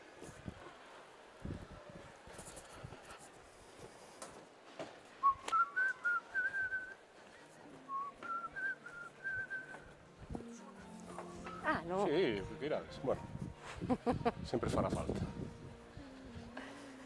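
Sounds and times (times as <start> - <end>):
person whistling a tune: 5.2 - 7.0, 7.9 - 9.9.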